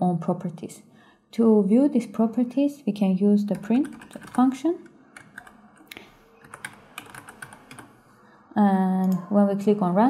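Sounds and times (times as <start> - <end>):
typing on computer keyboard: 3.5 - 4.5, 5.2 - 8.0.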